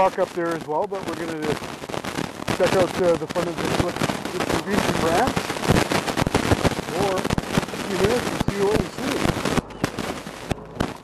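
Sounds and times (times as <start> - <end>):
microphone crackling and popping: 0.0 - 11.0.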